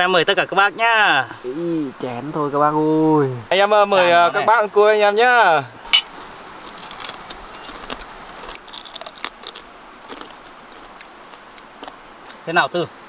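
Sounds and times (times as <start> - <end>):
crab shell crackling and crunching: 6.7 - 12.0.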